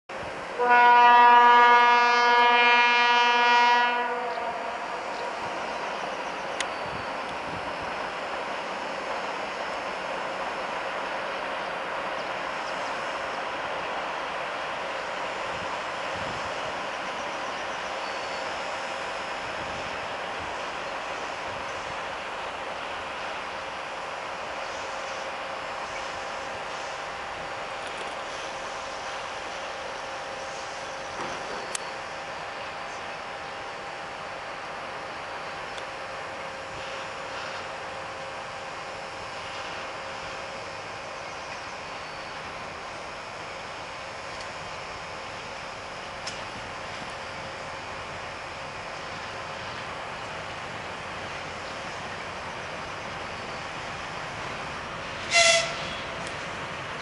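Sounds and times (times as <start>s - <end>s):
locomotive horn blast: 0.6s - 4.9s, 55.2s - 56.3s.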